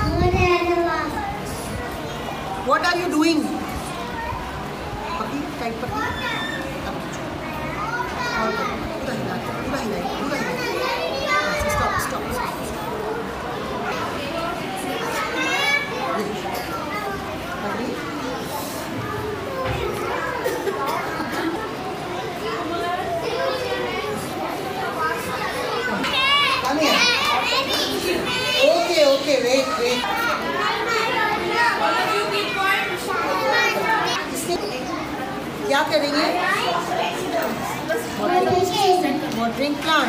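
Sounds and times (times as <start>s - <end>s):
young children chattering: 0.0s - 40.0s.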